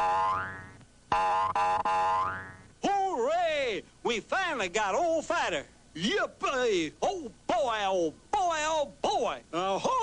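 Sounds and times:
cartoon boing sound effect: 0.0s - 2.7s.

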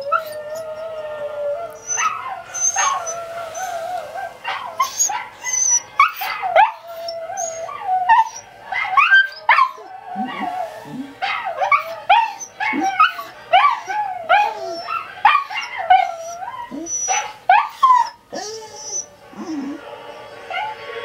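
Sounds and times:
dogs barking and whining: 0.0s - 21.0s.

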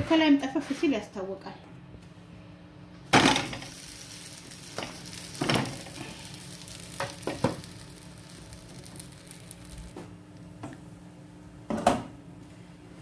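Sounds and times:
flatbread sizzling in a pan: 3.1s - 10.2s.

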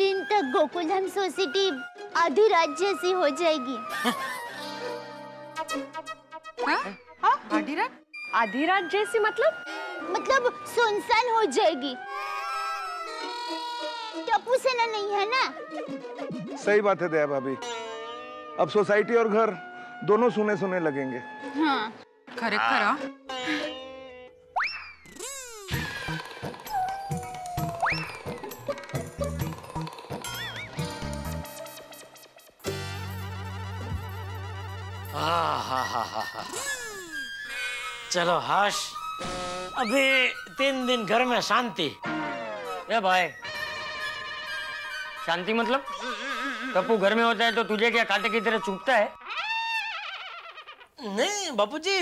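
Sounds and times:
whistle-like comic tone: 24.6s - 29.4s, 30.2s - 31.0s, 38.8s - 41.4s, 47.8s - 50.4s.

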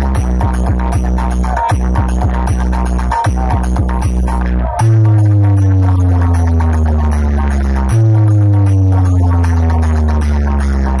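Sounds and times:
loud electronic bass notes sliding down: 0.0s - 11.0s.

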